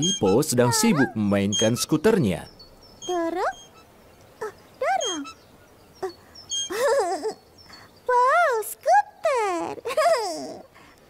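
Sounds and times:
high bird chirps: 0.0 - 8.6
high childlike wordless cries: 6.0 - 10.8.

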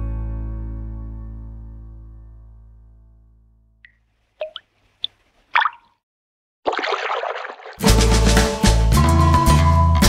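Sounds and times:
bubbly plop sound effects: 5.6 - 5.9, 6.7 - 7.8
rushing splash-like noise: 6.7 - 7.9
children's song band music: 7.8 - 10.0.

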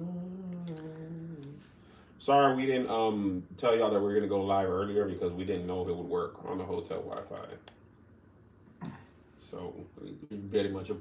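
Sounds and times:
man humming a low note: 0.0 - 1.6.

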